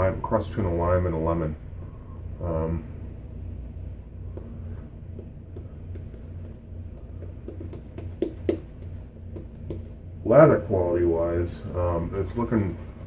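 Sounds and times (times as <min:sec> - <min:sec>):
steady low hum: 0:00.0 - 0:13.0
shaving brush wet squishing: 0:05.1 - 0:10.0.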